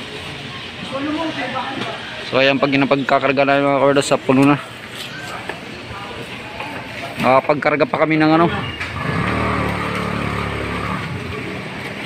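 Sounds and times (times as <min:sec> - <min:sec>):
vehicle engine running: 0:09.0 - 0:12.0.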